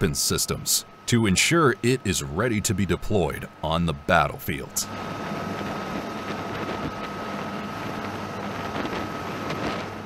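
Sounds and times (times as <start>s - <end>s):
helicopter rotor and turbine: 1.6s - 10.0s.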